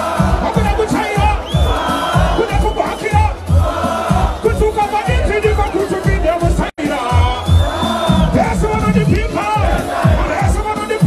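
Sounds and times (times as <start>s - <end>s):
crowd shouting along: 0.0s - 11.0s
steady kick drum beat: 0.0s - 11.0s.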